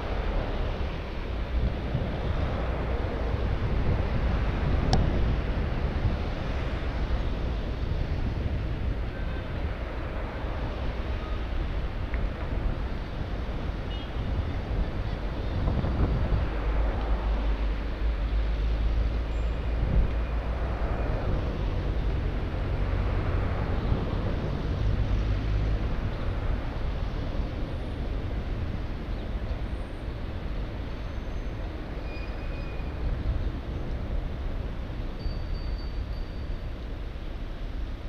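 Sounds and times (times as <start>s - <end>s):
road traffic passing: 0.0s - 38.0s
wind rumble on microphone: 0.0s - 38.0s.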